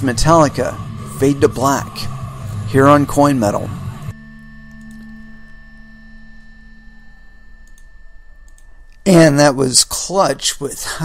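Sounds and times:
high whine: 0.0s - 11.0s
steady low hum: 0.0s - 11.0s
soft clicks: 4.6s - 5.2s, 7.6s - 9.0s.

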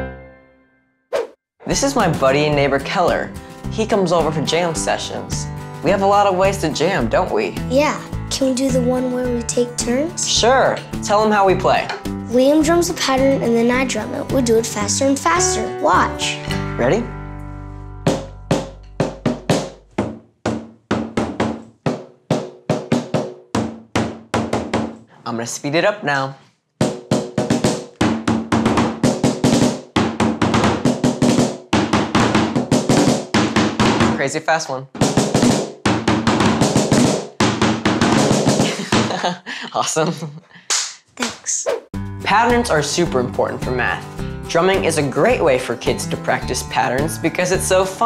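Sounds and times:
fast snare drumming: 26.8s - 34.2s, 35.0s - 39.2s.

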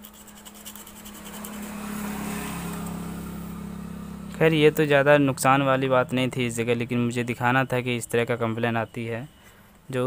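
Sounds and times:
vehicle engine passing by: 0.1s - 6.2s.

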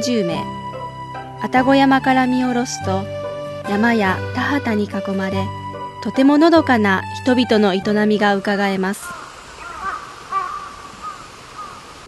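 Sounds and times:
faint outdoor background: 0.0s - 12.0s
crows cawing: 9.0s - 12.0s.

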